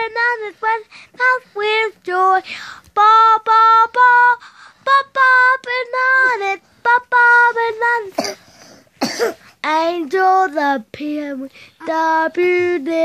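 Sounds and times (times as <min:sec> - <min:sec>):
boy singing: 0:00.0 - 0:08.4, 0:09.6 - 0:13.0.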